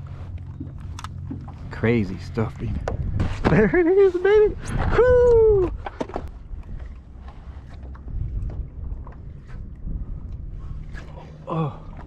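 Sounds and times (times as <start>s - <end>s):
small waves lapping against hull: 0.0s - 12.0s
wind rumbling on microphone: 0.0s - 12.0s.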